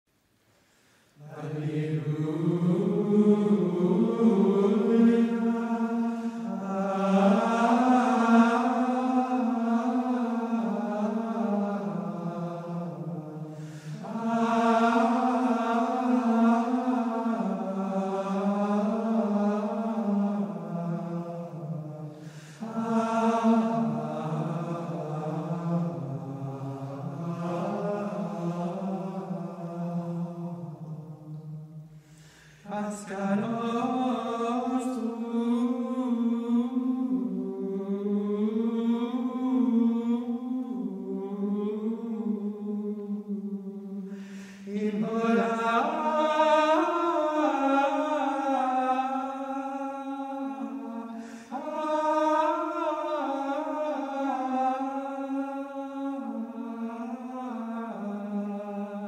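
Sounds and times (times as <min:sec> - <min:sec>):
male voices chanting in unison: 0:01.2 - 0:59.0.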